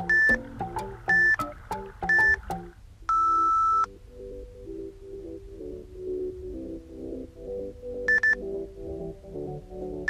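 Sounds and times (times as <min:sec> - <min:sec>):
timer beeps: 0:00.0 - 0:03.9, 0:08.1 - 0:08.4
background music: 0:00.0 - 0:10.0.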